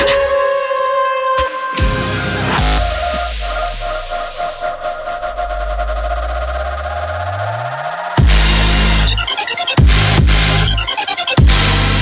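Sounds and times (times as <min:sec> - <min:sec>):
electronic music build-up: 0:00.0 - 0:12.0.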